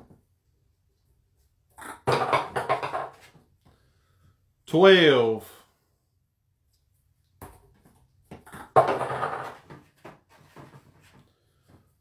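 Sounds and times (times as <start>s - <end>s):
plastic ball clattering in jug: 8.4s - 10.9s.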